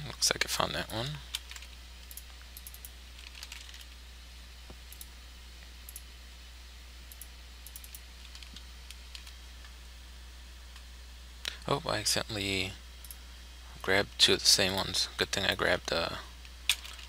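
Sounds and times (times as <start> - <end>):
steady low hum: 0.0 - 17.0
computer keystrokes: 7.1 - 9.3.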